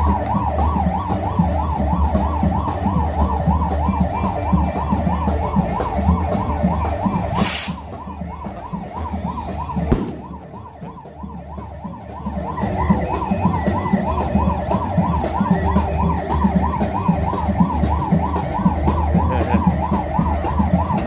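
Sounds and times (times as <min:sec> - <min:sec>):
siren warbling: 0:00.0 - 0:21.0
short hiss burst: 0:07.4 - 0:07.8.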